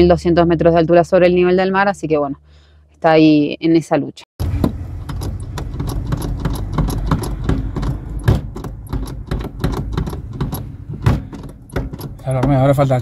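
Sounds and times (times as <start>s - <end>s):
steady low hum: 4.4s - 13.0s
small metallic clicks and rattles: 5.0s - 10.7s, 11.3s - 12.9s.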